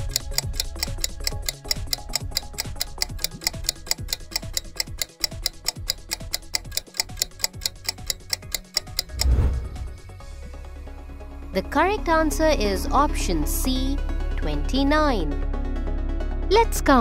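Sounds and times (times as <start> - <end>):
fast clock-like ticking: 0.0 - 10.1
low falling bass notes: 9.1 - 10.6.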